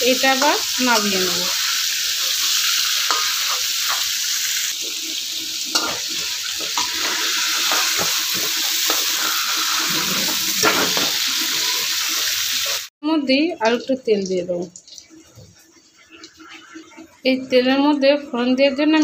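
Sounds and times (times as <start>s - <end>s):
vegetables sizzling in hot oil: 0.0s - 18.5s.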